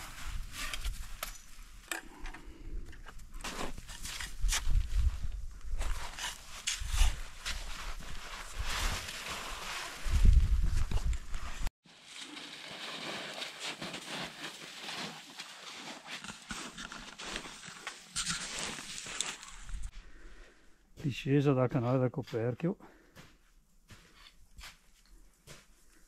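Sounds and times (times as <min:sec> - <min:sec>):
clothing and gear rustling: 0:03.4 - 0:19.9
boots crunching in snow: 0:05.8 - 0:19.9
wind rumble on microphone: 0:10.0 - 0:11.7.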